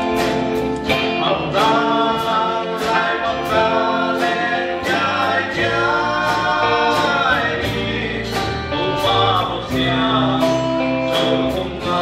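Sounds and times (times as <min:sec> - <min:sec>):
bass: 0:00.0 - 0:12.0
guitar: 0:00.0 - 0:12.0.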